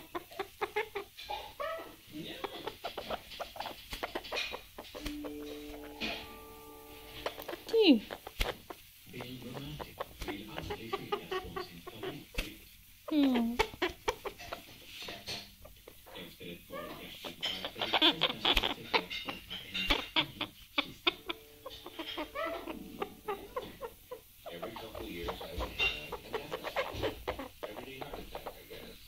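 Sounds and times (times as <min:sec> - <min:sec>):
parrot clucking softly: 0:00.0 - 0:29.0.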